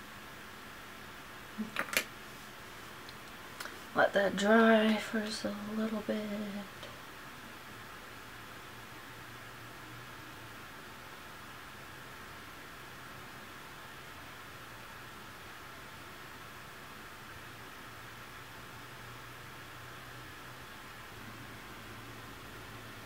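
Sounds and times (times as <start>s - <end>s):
faint low hum: 0.0s - 23.0s
faint recording hiss: 0.0s - 23.0s.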